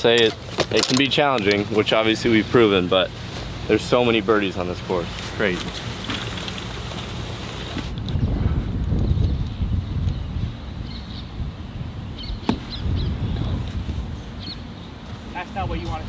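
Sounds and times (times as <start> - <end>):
wind rumble on microphone: 6.1 - 16.0.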